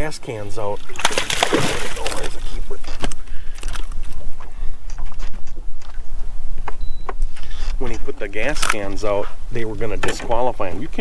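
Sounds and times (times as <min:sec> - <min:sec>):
clicks and knocks of fish handling: 0:01.0 - 0:04.2.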